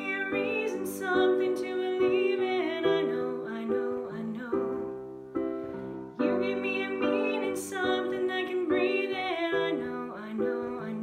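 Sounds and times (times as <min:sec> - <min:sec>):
woman singing a pop ballad: 0:00.0 - 0:05.0, 0:06.2 - 0:11.0.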